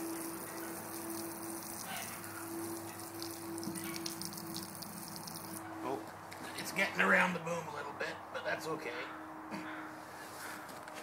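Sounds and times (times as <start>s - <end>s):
garden hose spraying water: 0.0s - 5.6s.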